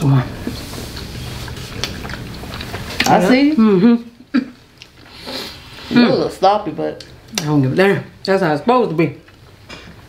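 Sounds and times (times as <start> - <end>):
people chewing: 0.0 - 6.3.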